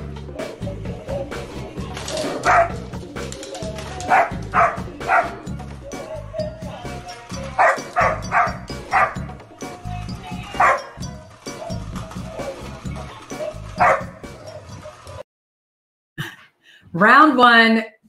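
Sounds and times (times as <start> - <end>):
tinny toy song with beat: 0.0 - 15.2
dog barking: 2.2 - 2.8, 4.0 - 5.4, 7.6 - 9.3, 10.5 - 11.0, 13.4 - 14.6.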